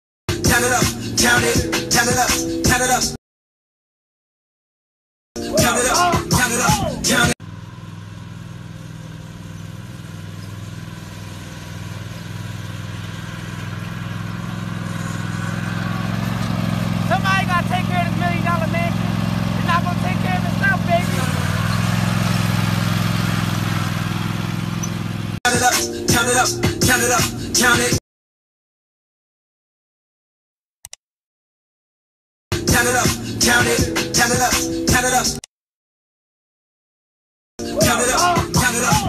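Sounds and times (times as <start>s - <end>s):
riding mower engine running: 0.3s - 3.1s, 5.4s - 28.0s, 32.5s - 35.4s, 37.6s - 39.0s
person speaking: 17.1s - 19.0s, 19.6s - 21.5s.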